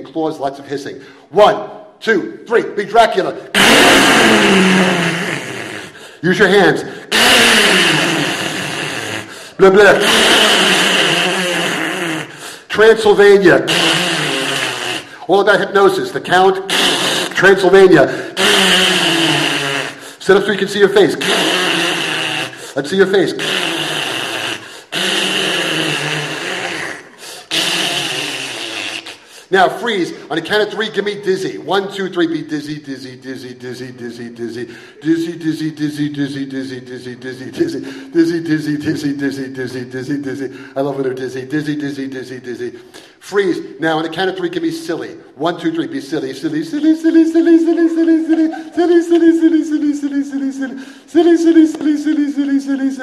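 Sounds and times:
person hissing: 0:03.4 - 0:12.8, 0:13.4 - 0:15.3, 0:16.6 - 0:30.3, 0:37.5 - 0:38.2, 0:46.7 - 0:53.0
harsh hissing with growl: 0:03.6 - 0:06.0
low growling voice: 0:03.6 - 0:06.0, 0:46.9 - 0:50.8.

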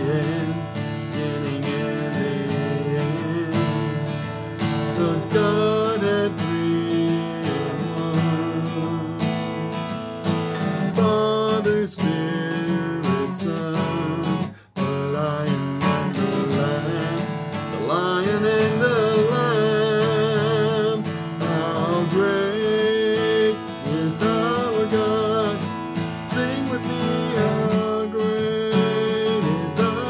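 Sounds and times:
acoustic guitar strummed: 0:00.0 - 0:30.0
man singing: 0:00.0 - 0:30.0.

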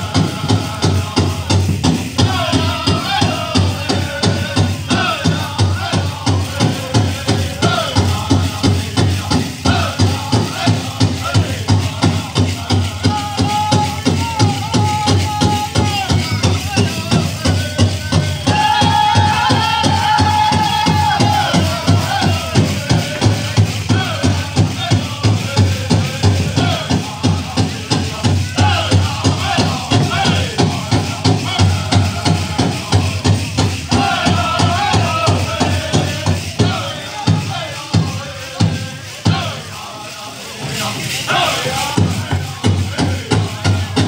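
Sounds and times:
big drum beat: 0:00.0 - 0:44.0
drum group singing: 0:00.0 - 0:44.0
tin jingle cones rattling: 0:05.7 - 0:44.0.

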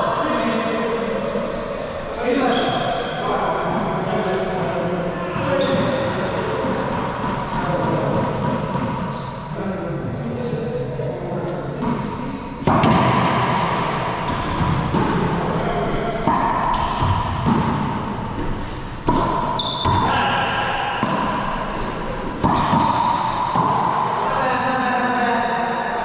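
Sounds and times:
sneakers squeaking on floor: 0:02.4 - 0:03.0, 0:05.3 - 0:07.5, 0:16.4 - 0:20.3, 0:20.9 - 0:25.3
racquetball hits echoing: 0:05.3 - 0:09.5, 0:11.4 - 0:25.9.

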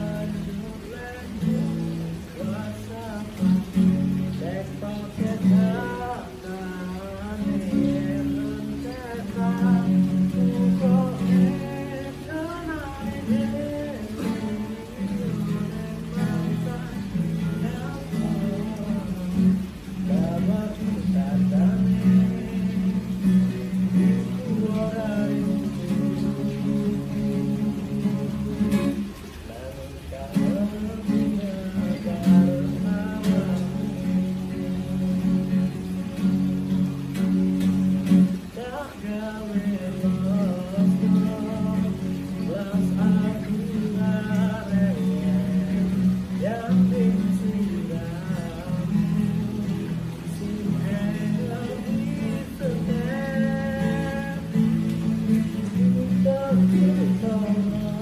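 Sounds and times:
acoustic guitar strumming: 0:00.0 - 0:58.0
man singing: 0:00.0 - 0:58.0.

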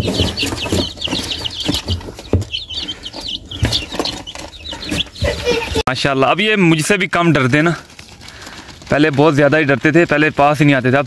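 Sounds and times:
knocks and rustling in cardboard box: 0:00.0 - 0:05.6
chicks peeping: 0:00.0 - 0:11.0.

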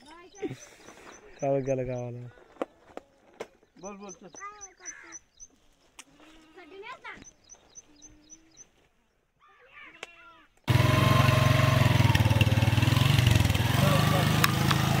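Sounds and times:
bird chirping: 0:00.0 - 0:06.0, 0:06.6 - 0:09.7
motorcycle engine running: 0:10.7 - 0:15.0.

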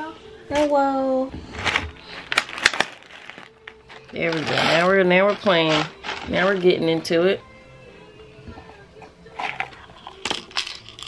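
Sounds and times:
dried beans rattling in plastic bin: 0:01.5 - 0:07.2.

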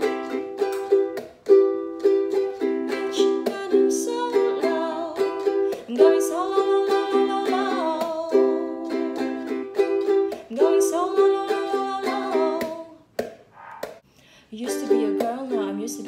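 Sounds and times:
ukulele strumming: 0:00.0 - 0:13.4, 0:14.6 - 0:16.0
woman singing: 0:02.9 - 0:09.7, 0:10.3 - 0:13.0, 0:14.5 - 0:16.0.

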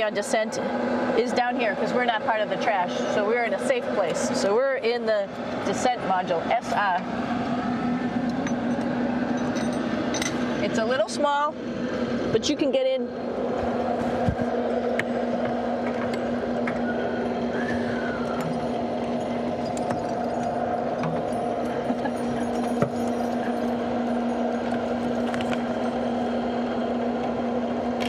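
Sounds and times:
ventilation fans humming: 0:00.0 - 0:28.0.

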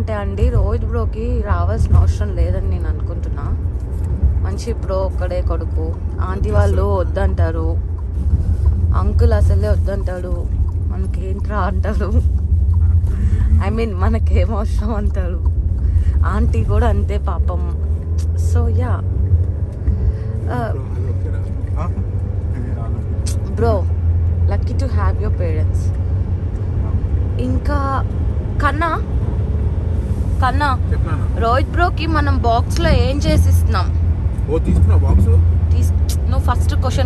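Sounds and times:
car running on road: 0:00.0 - 0:37.0
vehicle low rumble: 0:00.0 - 0:37.0.

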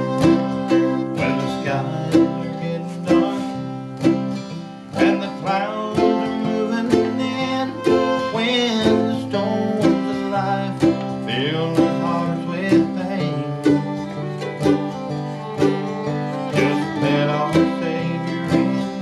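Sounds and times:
acoustic guitar strumming chords: 0:00.0 - 0:19.0
mandolin picking: 0:00.0 - 0:19.0.

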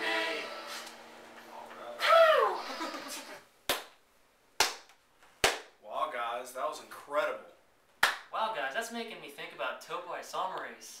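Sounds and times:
sharp hand claps: 0:03.7 - 0:04.0, 0:04.6 - 0:05.8, 0:08.0 - 0:08.3.

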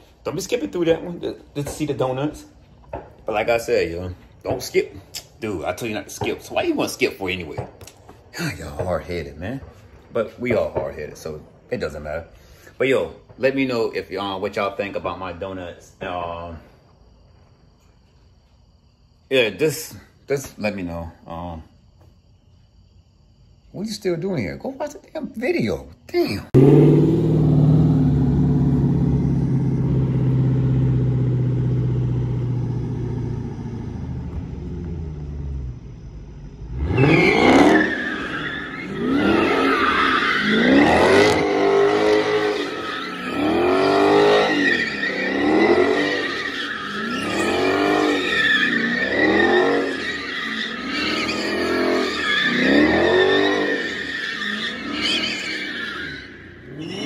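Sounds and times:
car engine revving: 0:26.6 - 0:55.5
tire squeal: 0:26.6 - 0:57.0.

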